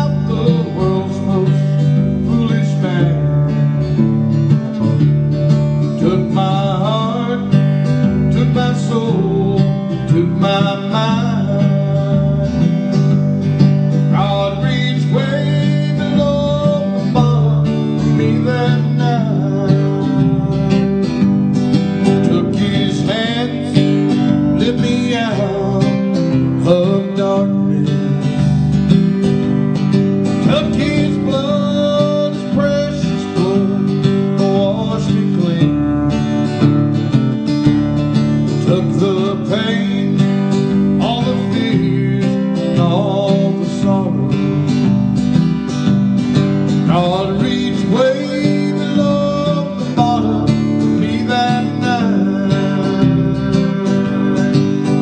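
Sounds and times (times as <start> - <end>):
man singing: 0.0 - 4.0, 5.7 - 28.6, 30.3 - 36.7, 38.4 - 44.9, 46.7 - 55.0
acoustic guitar strumming: 0.0 - 55.0.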